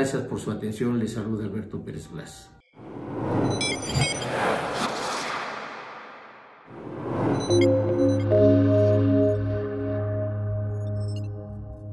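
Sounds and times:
rising whoosh: 2.8 - 10.3
high electronic blips: 7.1 - 9.4.

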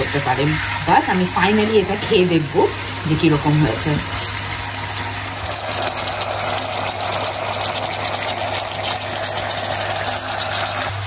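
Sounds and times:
food sizzling in frying pan: 0.0 - 11.0.

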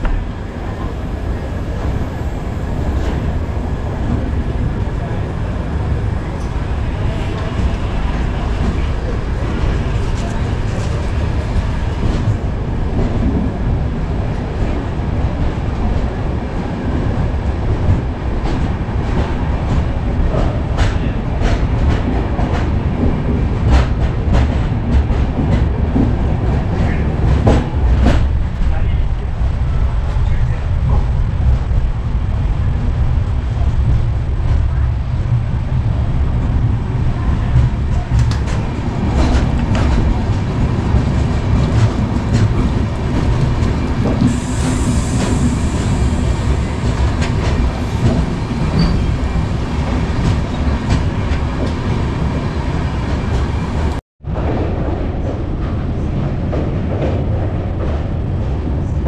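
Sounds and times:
train wheels rumbling on track: 0.0 - 59.0.

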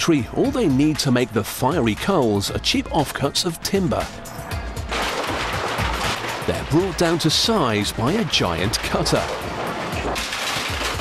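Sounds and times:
background music: 0.0 - 11.0
industrial wood-processing machinery: 4.9 - 11.0.

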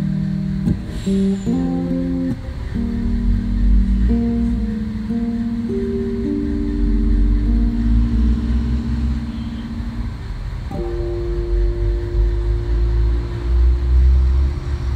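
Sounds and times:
guitar chords ringing: 0.0 - 14.9
steady low rumble: 0.0 - 14.9.

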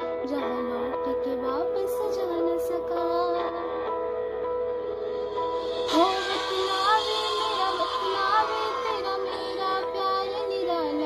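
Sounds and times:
woman singing: 0.0 - 4.2, 5.7 - 11.0
accompanying drone: 4.9 - 10.5.

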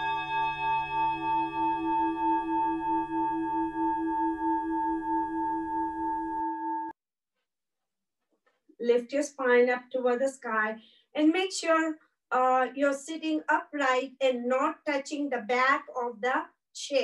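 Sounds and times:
singing bowl ringing: 0.0 - 7.0.

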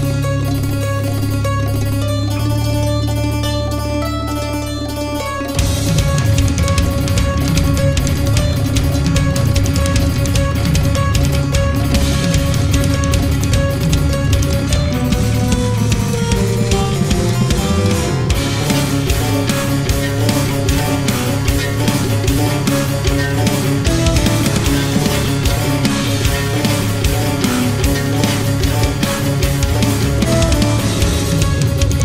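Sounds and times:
harpsichord keyboard metal riff: 0.0 - 32.0.

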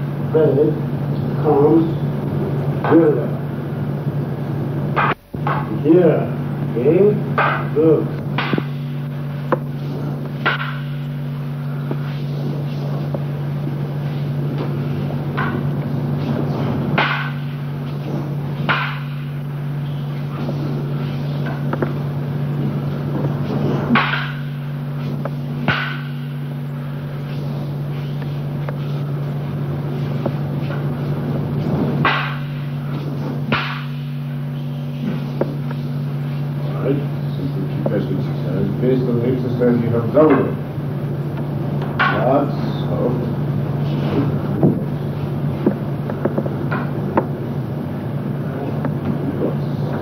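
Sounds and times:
low electrical hum and hiss: 0.0 - 50.0
sharp knocks: 5.0 - 5.8, 7.3 - 13.3, 14.5 - 26.8, 30.0 - 35.8, 41.4 - 42.5, 44.0 - 45.0.

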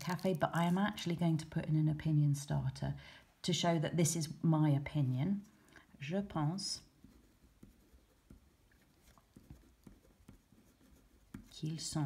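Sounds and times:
felt-tip pen scratching on paper: 6.8 - 12.0.

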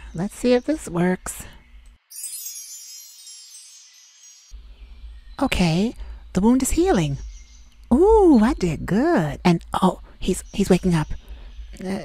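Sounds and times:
shimmering magic chime: 2.0 - 4.6.

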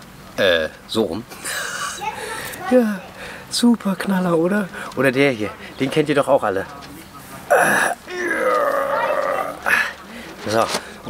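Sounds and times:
man's drawn-out wordless vocal: 7.5 - 9.9.

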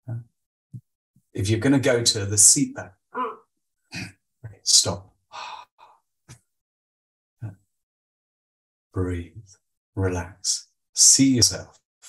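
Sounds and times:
faint breath sounds: 5.3 - 6.1.

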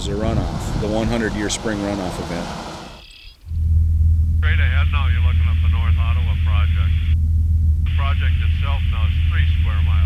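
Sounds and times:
small aircraft engine and propeller drone: 0.0 - 3.3
radio voice talking: 4.4 - 7.2, 7.9 - 10.0.

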